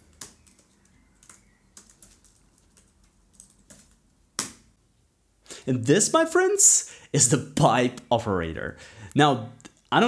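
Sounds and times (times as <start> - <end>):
typing on a computer keyboard: 0.0 - 4.0.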